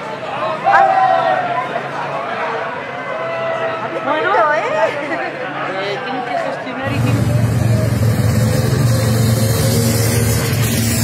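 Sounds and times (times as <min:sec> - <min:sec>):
crowd noise: 0:00.0 - 0:11.0
motorcycle engine running: 0:06.9 - 0:11.0.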